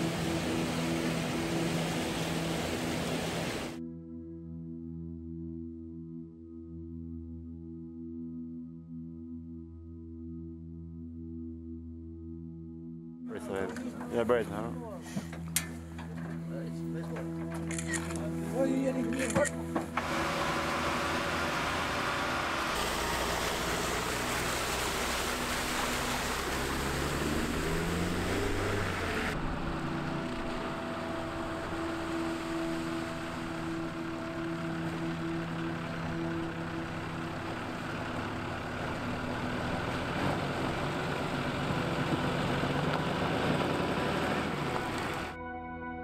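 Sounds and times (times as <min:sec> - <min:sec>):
truck engine running: 0:00.0 - 0:03.8, 0:13.4 - 0:45.4.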